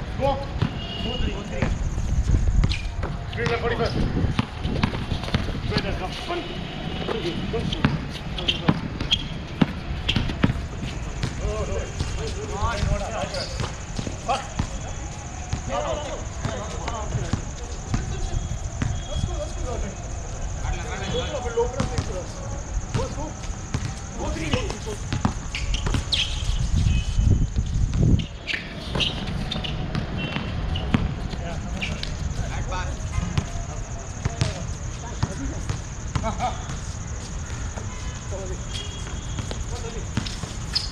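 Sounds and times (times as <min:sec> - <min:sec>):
players' voices calling: 0:00.0 - 0:40.9
basketball bouncing on hard court: 0:07.8 - 0:14.8, 0:21.8 - 0:22.2, 0:23.7 - 0:26.2, 0:28.9 - 0:31.3.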